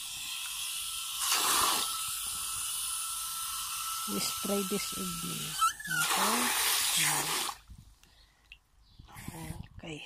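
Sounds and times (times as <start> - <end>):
water running from hose into bucket: 0.0 - 7.7.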